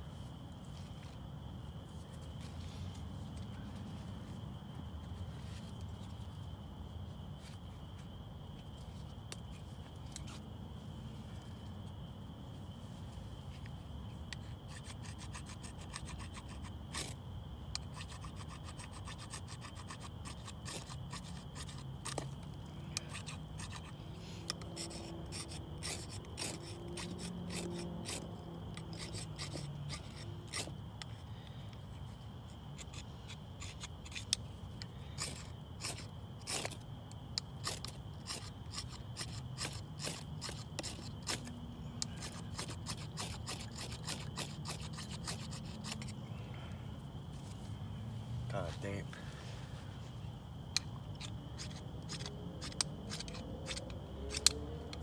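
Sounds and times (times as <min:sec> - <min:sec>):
knife scraping fire-starter rod: 0:09.3 - 0:10.4, 0:14.3 - 0:46.2, 0:50.7 - 0:55.0.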